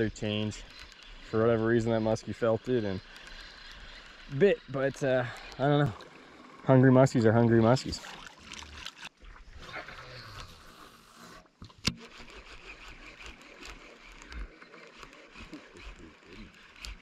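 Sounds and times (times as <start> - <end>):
fishing reel cranking: 0.0 - 17.0
lure splashing across water: 7.6 - 17.0.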